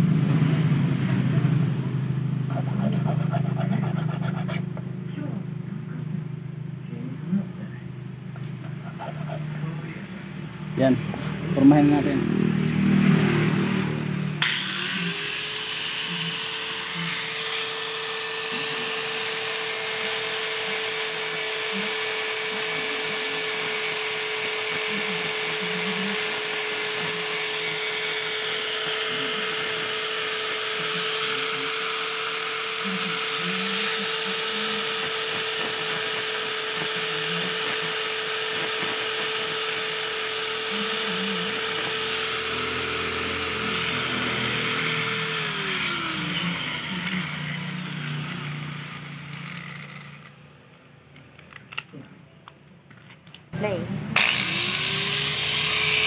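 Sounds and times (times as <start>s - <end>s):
angle grinder on steel wire: 2.5s - 4.8s, 14.3s - 50.4s, 54.2s - 56.0s
grinder disc spinning down: 14.4s - 50.4s, 54.2s - 56.0s.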